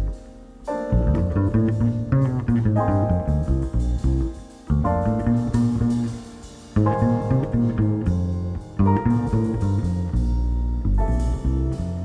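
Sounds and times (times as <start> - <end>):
plucked double bass: 0.0 - 0.2, 0.8 - 12.0
live jazz quartet: 0.0 - 12.0.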